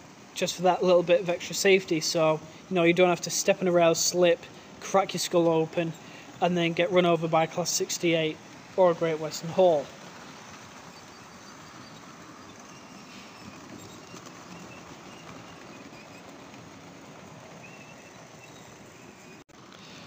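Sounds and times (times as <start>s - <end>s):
model trains whirring on rails: 0.0s - 20.0s.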